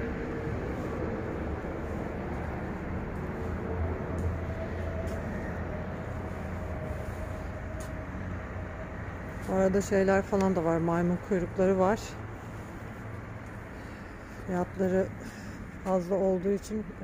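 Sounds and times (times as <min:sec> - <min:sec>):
steady low rumbling with hum: 0:00.0 - 0:17.0.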